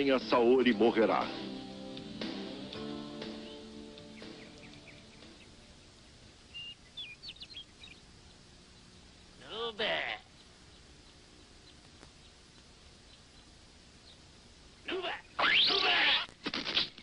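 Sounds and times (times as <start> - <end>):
background music: 0.0 - 6.2
high bird chirps: 3.2 - 5.7, 6.5 - 8.9.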